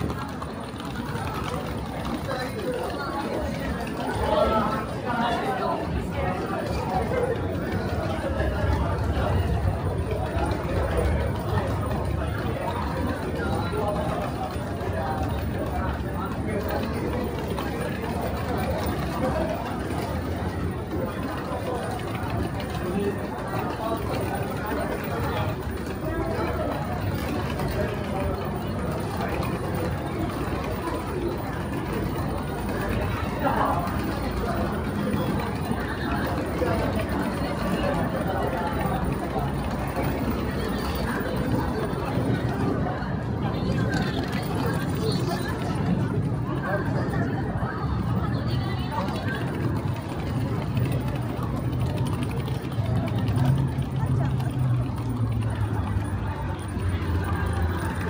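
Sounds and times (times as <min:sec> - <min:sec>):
indistinct voices: 0:00.0 - 0:58.0
passers-by talking: 0:00.0 - 0:58.0
wheeled suitcase rattling on tiles: 0:48.6 - 0:58.0.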